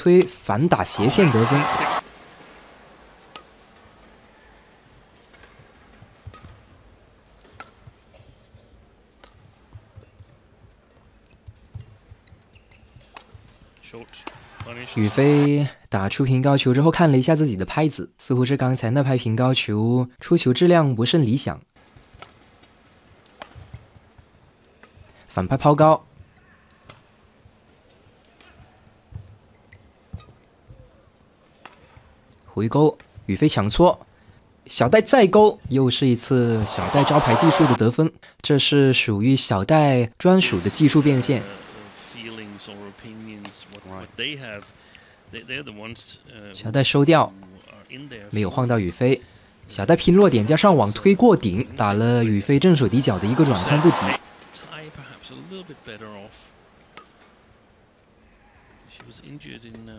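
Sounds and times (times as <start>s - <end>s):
faint arena background: 0.0s - 59.9s
footsteps on court: 4.9s - 13.8s
racket hitting shuttlecock: 5.3s - 6.6s, 7.4s - 8.0s, 9.2s - 10.4s, 11.4s - 13.5s, 23.2s - 23.8s, 31.6s - 32.0s.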